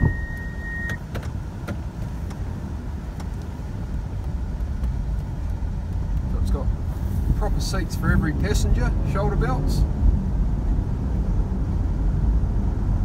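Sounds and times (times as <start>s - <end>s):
in-cabin road and engine noise: 0.0s - 13.0s.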